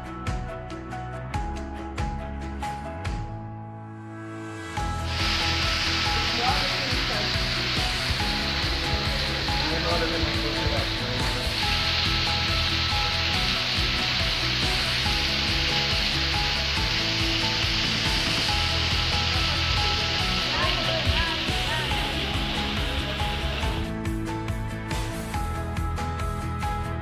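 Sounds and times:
soft background music: 0.0 - 27.0
waterfall rushing and splashing: 5.0 - 23.9.

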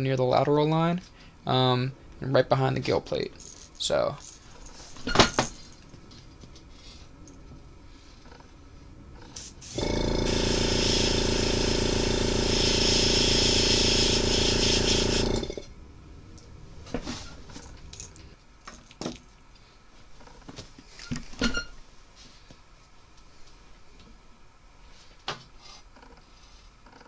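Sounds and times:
airbrush compressor hum: 9.2 - 17.9
airbrush spraying hiss: 9.3 - 15.6.

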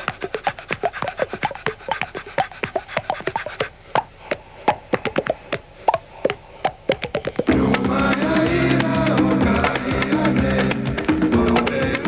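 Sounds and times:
breathy gasps panting: 0.0 - 7.5.

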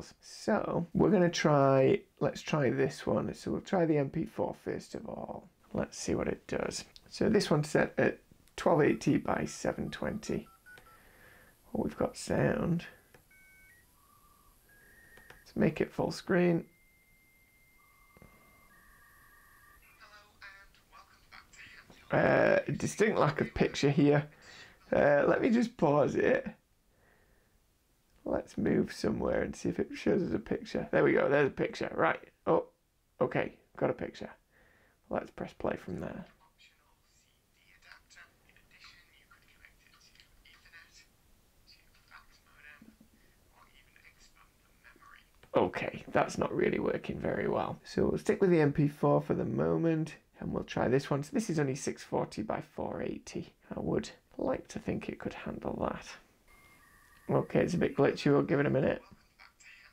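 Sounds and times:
voice from small laptop speakers: 8.6 - 10.9, 17.8 - 26.5, 35.2 - 47.9, 56.0 - 59.9
short steady tones from laptop speakers: 13.2 - 15.6, 16.6 - 20.0, 56.5 - 58.5.

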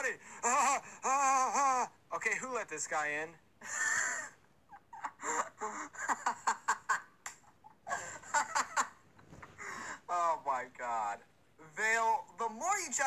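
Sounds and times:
person laughing: 3.6 - 9.8.

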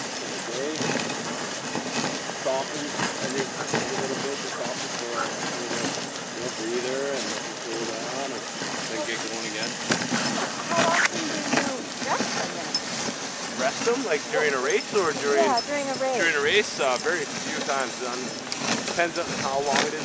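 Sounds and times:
sled hissing over snow: 0.0 - 20.0
sled knocks and rattles: 0.0 - 20.0
indistinct voices talking: 2.4 - 20.0.

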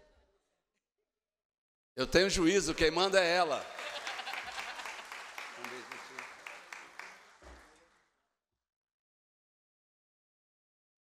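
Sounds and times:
audience applause: 3.5 - 8.1.

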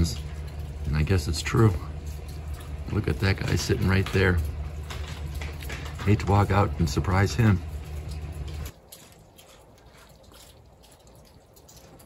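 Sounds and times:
rain drips: 0.0 - 12.0.

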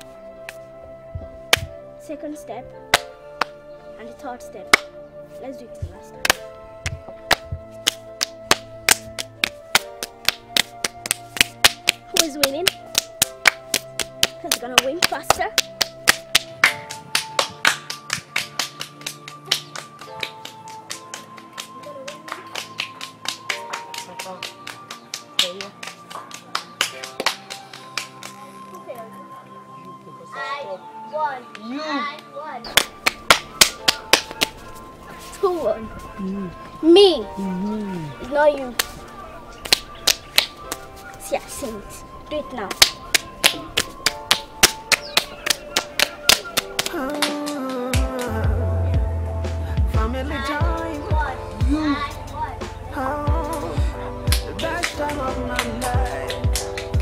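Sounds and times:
background music with held notes: 0.0 - 57.0
children's hands clapping rhythmically: 2.9 - 3.6, 4.7 - 4.9, 6.2 - 28.5, 32.7 - 34.6, 38.7 - 39.0, 39.6 - 40.8, 42.7 - 48.5, 54.3 - 57.0.

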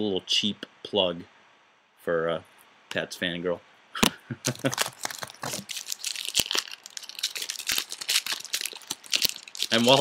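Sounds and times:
foil wrapper crinkling and tearing: 4.4 - 10.0.

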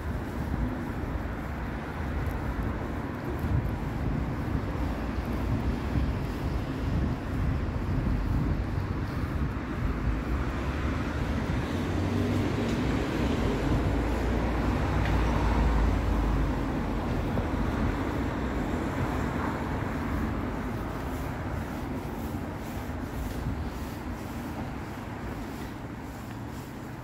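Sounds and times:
distant traffic rumble: 0.0 - 27.0.

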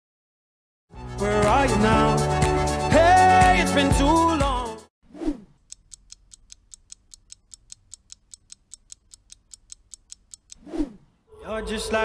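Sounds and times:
clock ticking: 5.4 - 10.6.

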